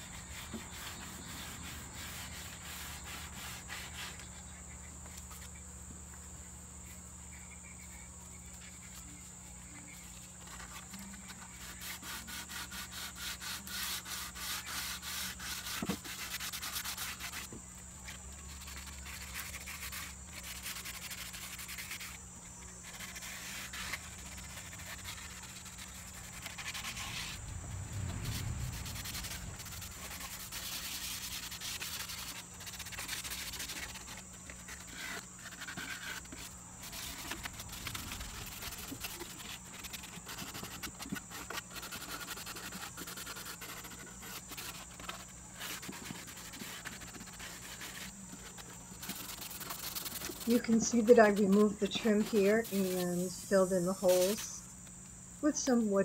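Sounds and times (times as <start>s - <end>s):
sandpaper rubbing on wood: 0.0s - 4.3s, 10.0s - 17.6s, 18.5s - 22.2s, 22.8s - 27.4s, 28.1s - 54.6s.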